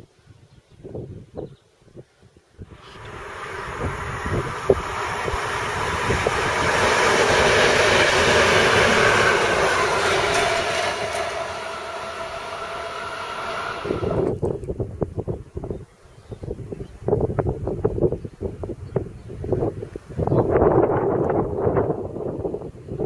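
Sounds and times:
wind buffeting microphone: 0:00.2 - 0:23.0
diesel locomotive passing: 0:02.6 - 0:14.6
train wheel noise: 0:02.6 - 0:14.7.

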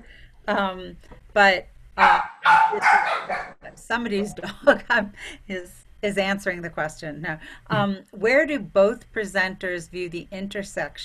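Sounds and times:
dog barking: 0:02.0 - 0:03.6.

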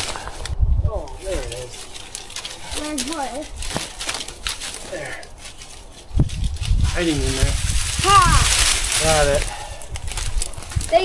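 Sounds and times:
dry leaves crackling and rustling: 0:00.0 - 0:11.0
stalks snapping: 0:01.4 - 0:06.8, 0:07.4 - 0:11.0.

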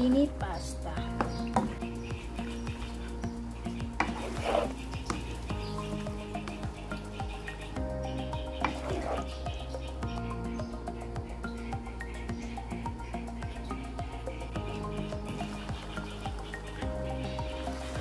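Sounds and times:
background music: 0:00.0 - 0:18.0.

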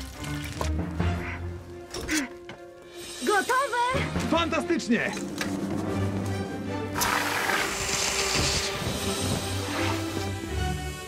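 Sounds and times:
fire extinguisher spraying: 0:07.0 - 0:10.4.

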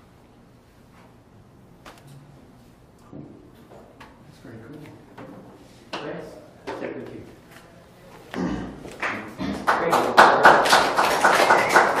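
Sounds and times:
audience applauding: 0:09.0 - 0:12.0.

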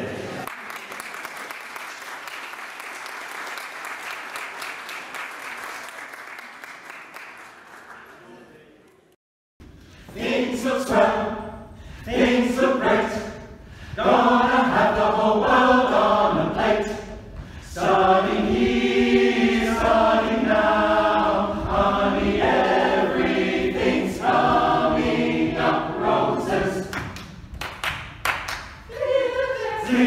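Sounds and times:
choir singing: 0:10.1 - 0:27.0, 0:28.9 - 0:30.0.

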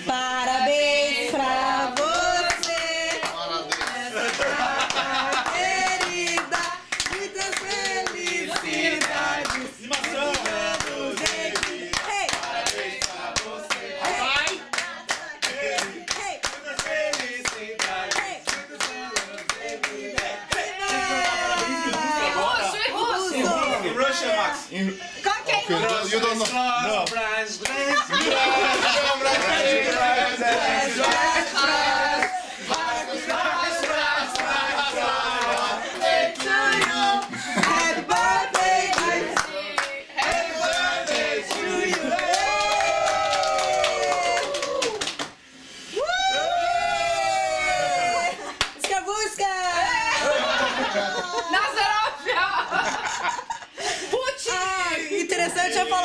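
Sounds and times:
voices singing: 0:00.0 - 0:44.3
group clapping in time: 0:01.9 - 0:22.4, 0:25.8 - 0:45.5, 0:48.4 - 0:50.8.

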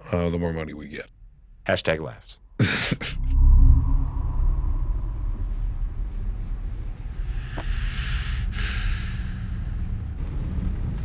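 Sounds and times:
low rumble: 0:00.7 - 0:11.0
faint thin tone: 0:03.2 - 0:07.2.

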